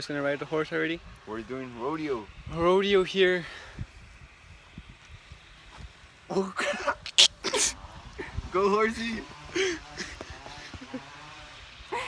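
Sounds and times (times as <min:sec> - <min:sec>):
wind rumble on microphone: 0:00.8 - 0:12.0.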